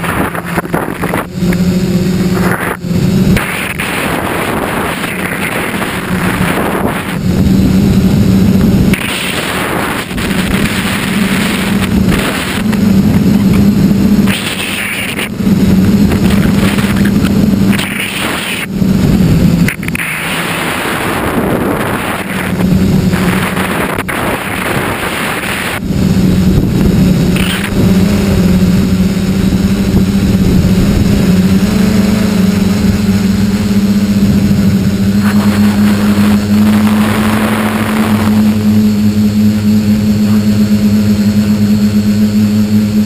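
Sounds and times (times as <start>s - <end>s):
drone motors and propellers droning: 0.0s - 43.0s
wind rush on microphone: 0.0s - 43.0s.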